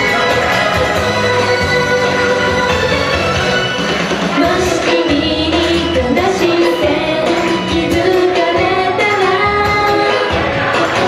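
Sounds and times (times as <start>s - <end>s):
backing music: 0.0s - 11.0s
woman singing pop song: 4.3s - 11.0s.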